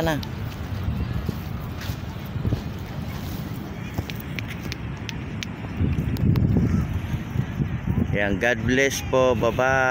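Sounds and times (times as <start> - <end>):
faint crowd voices: 0.0 - 9.9
wind buffeting microphone: 0.0 - 9.9.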